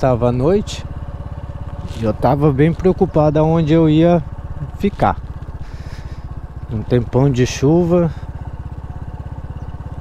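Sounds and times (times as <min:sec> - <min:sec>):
scooter engine running: 0:00.0 - 0:10.0.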